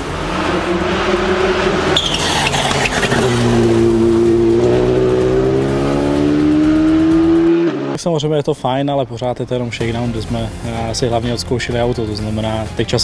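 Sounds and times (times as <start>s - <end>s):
rally car engine revving: 0.0s - 8.0s
tyre and road noise: 0.0s - 8.0s.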